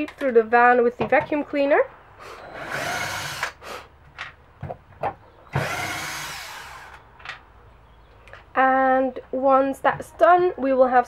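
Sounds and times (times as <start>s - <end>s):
cordless drill driving screws: 2.4s - 3.6s, 5.5s - 7.0s.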